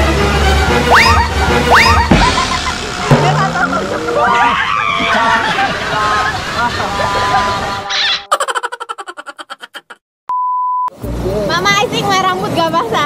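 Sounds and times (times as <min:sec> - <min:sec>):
music: 0:00.0 - 0:03.9, 0:10.9 - 0:12.5.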